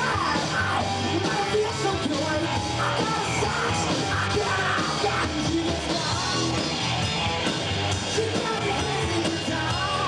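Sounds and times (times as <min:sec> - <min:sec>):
singer yelling: 0:00.0 - 0:06.6
bass guitar: 0:00.0 - 0:10.0
drums: 0:00.0 - 0:10.0
electric guitars: 0:00.0 - 0:10.0.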